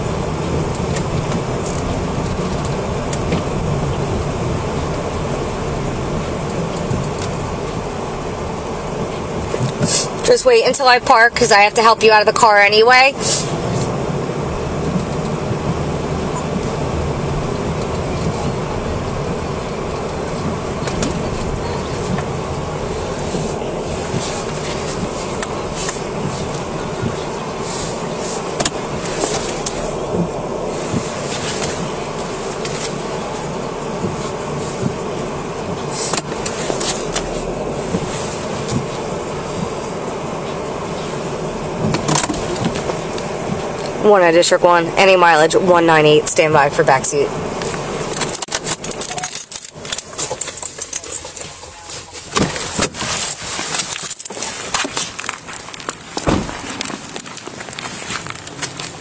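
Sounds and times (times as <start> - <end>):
car cabin hum: 0.0 - 59.0.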